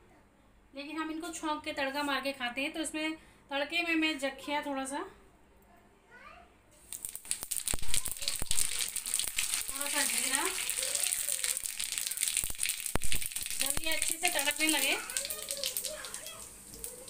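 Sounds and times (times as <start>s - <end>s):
seeds crackling in hot oil: 6.8s - 17.0s.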